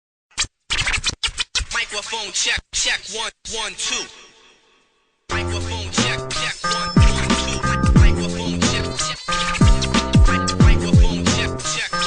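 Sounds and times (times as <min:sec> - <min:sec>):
turntable scratching: 0:00.3 - 0:04.3, 0:05.3 - 0:12.0
hip hop music: 0:01.6 - 0:03.0, 0:03.6 - 0:12.0.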